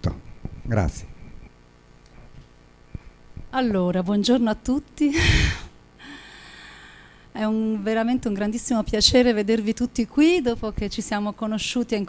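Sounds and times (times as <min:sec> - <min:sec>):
sharp intake of breath: 0:05.2 - 0:07.3.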